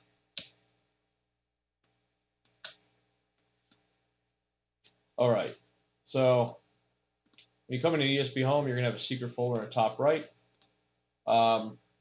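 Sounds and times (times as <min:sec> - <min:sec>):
computer mouse clicks: 0:00.3 - 0:00.6, 0:01.8 - 0:03.9, 0:06.4 - 0:06.6, 0:07.2 - 0:07.6, 0:09.5 - 0:09.8, 0:10.5 - 0:10.8.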